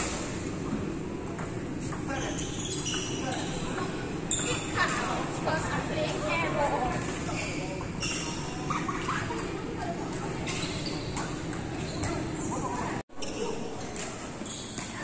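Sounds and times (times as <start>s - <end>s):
people talking: 3.1s - 14.2s.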